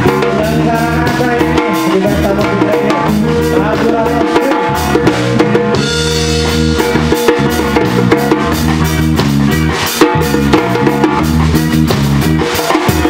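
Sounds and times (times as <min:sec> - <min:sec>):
drum kit beat: 0:00.0 - 0:13.0
electric guitars: 0:00.0 - 0:13.0.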